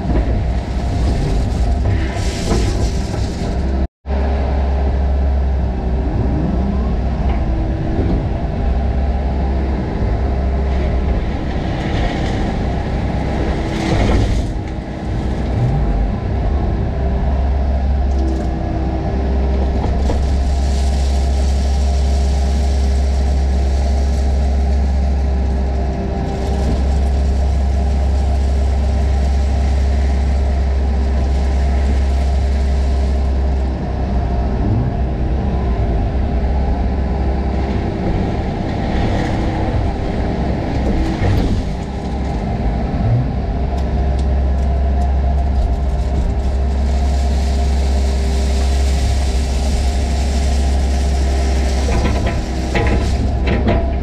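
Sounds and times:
crushed stone scraping and clatter: 0:00.0 - 0:03.9, 0:19.6 - 0:33.7, 0:45.4 - 0:54.0
excavator diesel engine running: 0:00.0 - 0:54.0.

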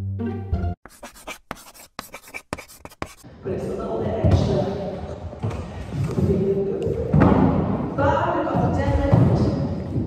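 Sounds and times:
muffled voice echoing: 0:07.9 - 0:09.8.

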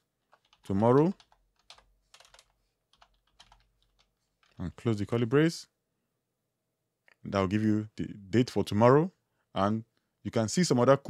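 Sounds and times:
computer keyboard typing: 0:00.2 - 0:04.8.

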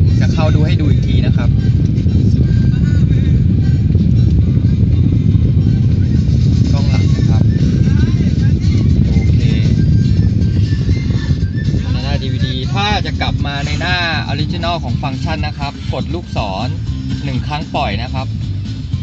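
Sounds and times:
faint music and voices: 0:00.0 - 0:19.0
loud low rumble: 0:00.0 - 0:19.0.

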